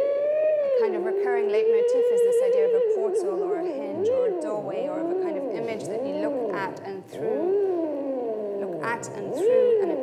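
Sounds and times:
theremin gliding tone: 0.0s - 10.0s.

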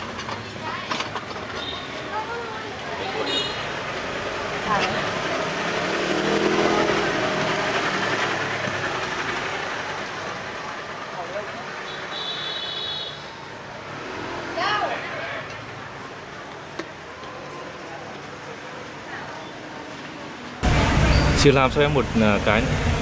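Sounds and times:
motorbike passing: 0.0s - 23.0s
street noise: 0.0s - 23.0s.

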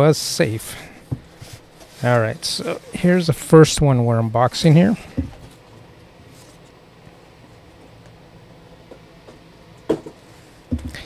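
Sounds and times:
foam rustling handling noise: 1.2s - 3.4s
dull knock: 9.9s - 11.0s.

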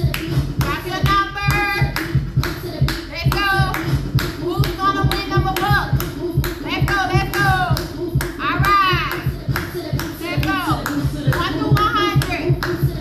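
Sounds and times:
hand claps: 0.0s - 13.0s
upbeat music with steady beat: 0.0s - 13.0s.

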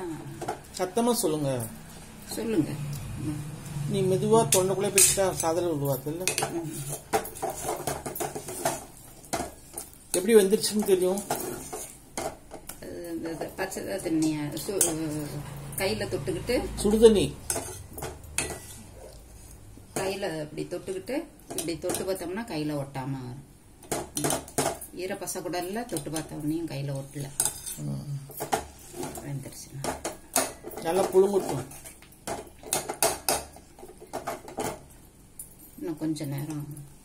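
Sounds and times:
ladle scraping steel pot: 17.4s - 19.6s.

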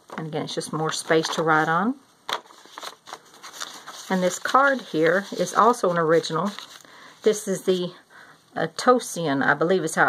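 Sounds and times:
paper rustling and crinkling: 0.9s - 1.7s, 2.3s - 7.4s.

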